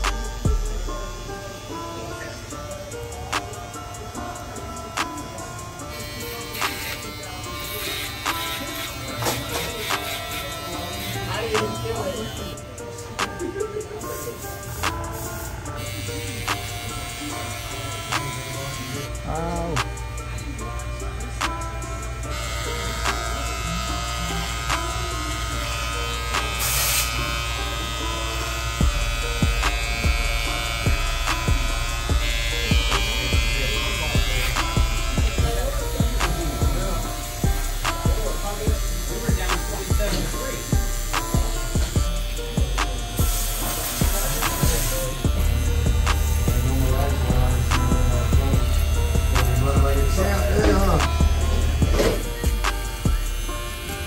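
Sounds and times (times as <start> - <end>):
background music: 0.0 - 54.0
electric trimmer buzzing: 0.0 - 54.0.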